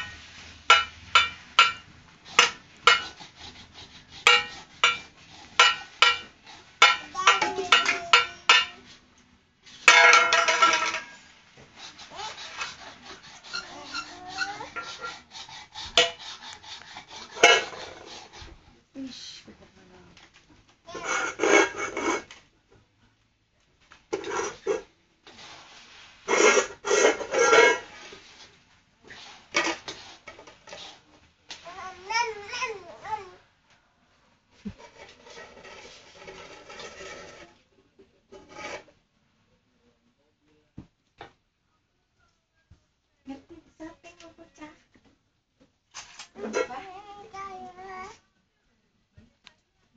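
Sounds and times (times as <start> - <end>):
metal bowls scraping on floor: 0.0 - 9.0, 9.6 - 16.3, 17.0 - 18.4, 20.9 - 22.4, 24.1 - 31.1, 34.7 - 37.7, 38.3 - 39.0.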